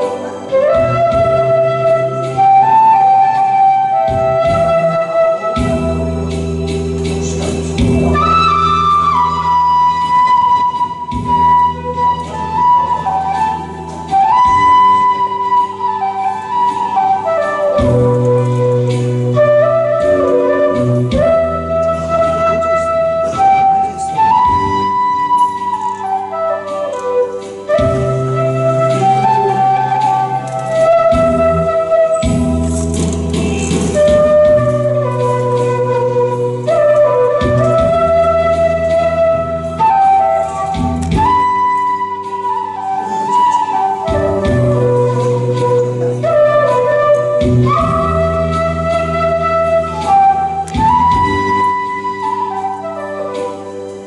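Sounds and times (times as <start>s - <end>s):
bamboo flute melody: 0.0s - 54.0s
instrumental accompaniment with bass: 0.0s - 54.0s.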